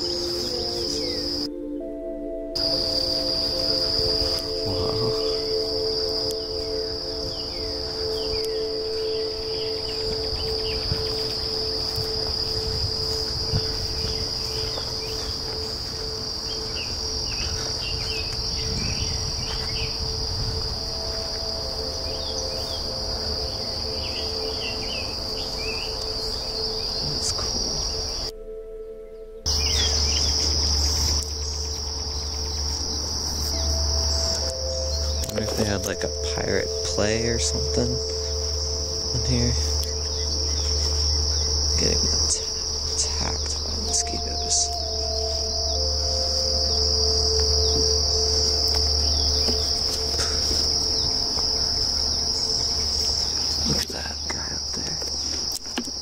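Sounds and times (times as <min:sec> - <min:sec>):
low rumble: 0:00.0 - 0:55.2
bird chirps: 0:00.0 - 0:56.0
insects droning: 0:00.0 - 0:56.0.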